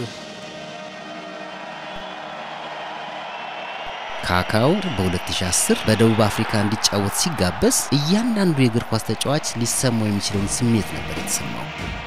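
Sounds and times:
brass band sustained chords: 0:00.0 - 0:02.5
stadium crowd noise: 0:00.0 - 0:12.0.

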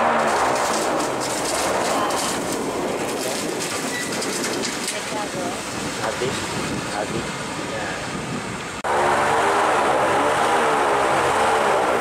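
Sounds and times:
rushing air and water: 0:00.0 - 0:12.0
airboat engine and propeller: 0:05.0 - 0:12.0.

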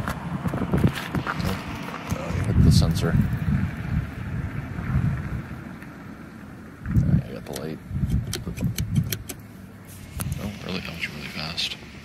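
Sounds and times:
wind buffeting microphone: 0:00.0 - 0:09.4.

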